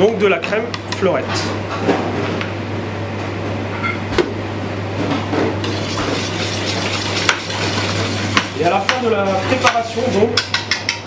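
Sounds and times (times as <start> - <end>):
steady low hum: 0.0 - 11.0
whisk clinking against bowl: 5.6 - 11.0
whisk stirring liquid in bowl: 5.6 - 11.0.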